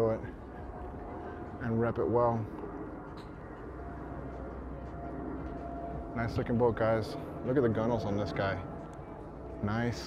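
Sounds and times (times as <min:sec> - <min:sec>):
faint steady hum: 0:00.0 - 0:10.0
steady low rumble: 0:00.0 - 0:10.0.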